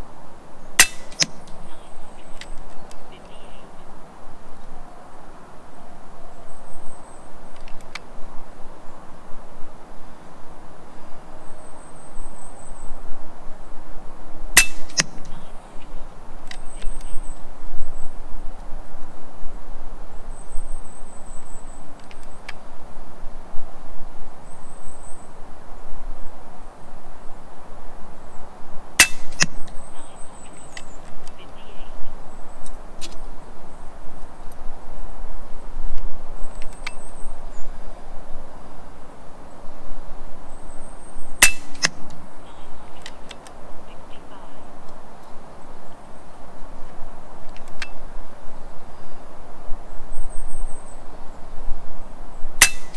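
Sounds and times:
air rifle shot crack: 0.8 - 1.6, 14.6 - 15.2, 29.0 - 29.6, 41.4 - 42.0, 52.6 - 52.9.

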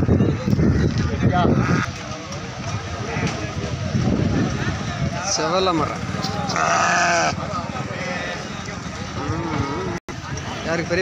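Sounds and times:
men's voices: 0.4 - 11.0
goat bleating: 6.5 - 7.4.

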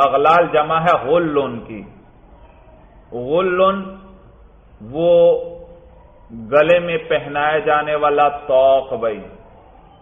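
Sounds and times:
man speaking: 4.8 - 5.6.

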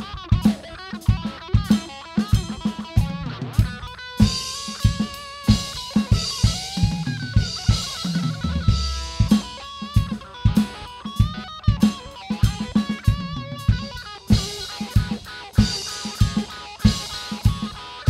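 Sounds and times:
drum kit beat: 0.0 - 18.0
electric guitar lead: 0.0 - 18.0.

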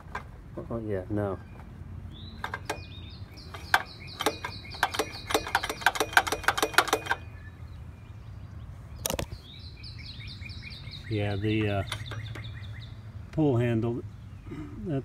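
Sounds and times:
birds chirping: 0.0 - 15.0
pull-start clicking and knocking: 3.5 - 7.3.

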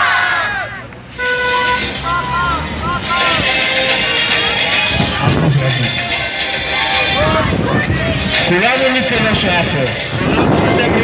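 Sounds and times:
crowd chanting: 0.0 - 8.3
crowd noise: 0.0 - 11.0
horn blast: 1.1 - 6.5
horn toots: 1.1 - 6.6.

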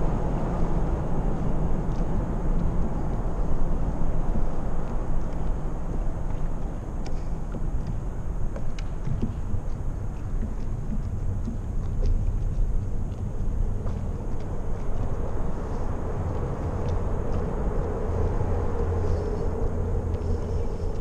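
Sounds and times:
wind and water rumble: 0.0 - 21.0.

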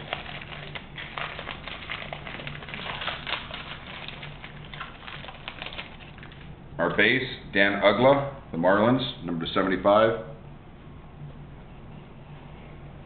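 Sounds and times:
foil wrapper crinkling: 0.0 - 6.5.

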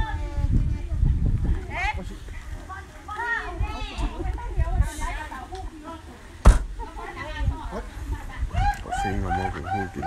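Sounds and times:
voices talking at once: 6.8 - 10.0.

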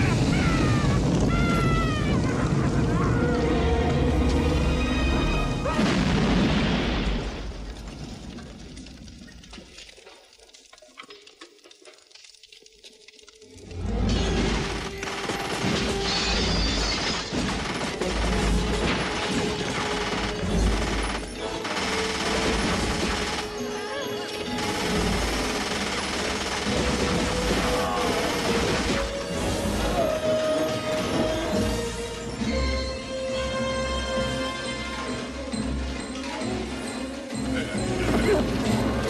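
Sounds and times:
action music: 13.8 - 39.0.

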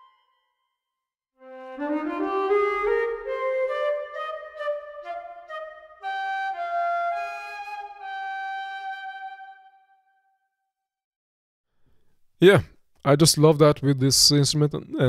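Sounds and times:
flute melody: 0.0 - 0.7, 1.4 - 10.3.

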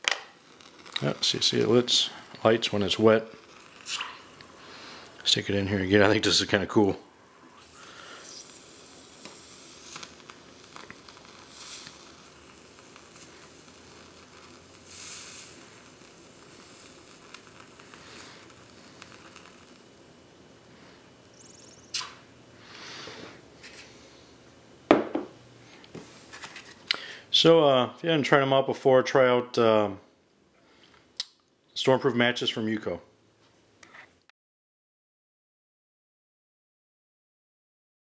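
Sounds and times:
match fizzing: 0.0 - 24.1.

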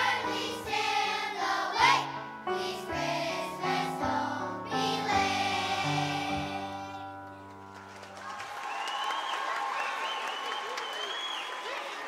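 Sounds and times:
children's choir singing: 0.0 - 7.1
audience applause: 7.6 - 12.0.

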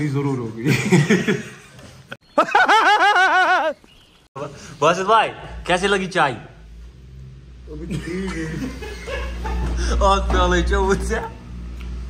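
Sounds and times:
voices talking and chuckling: 7.8 - 11.4.

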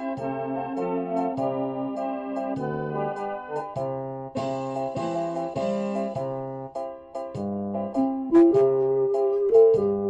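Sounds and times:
keyboard chords over bass line: 0.0 - 10.0.

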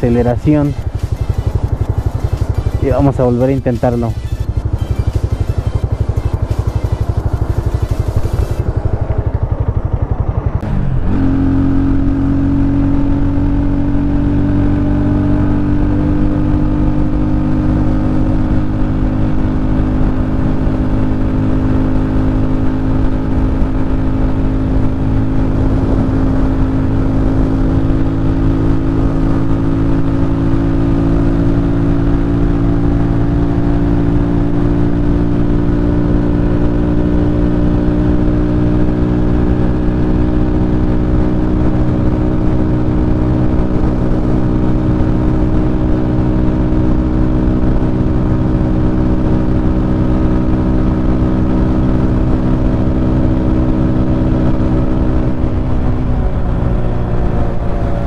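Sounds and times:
motorcycle engine at high revs: 0.0 - 58.0.

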